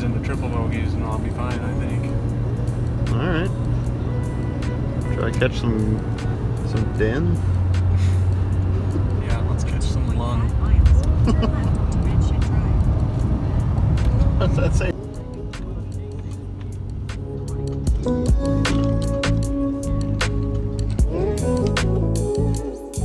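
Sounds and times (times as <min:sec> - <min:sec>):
car road rumble: 0:00.0 - 0:22.6
music with held notes: 0:00.0 - 0:23.0.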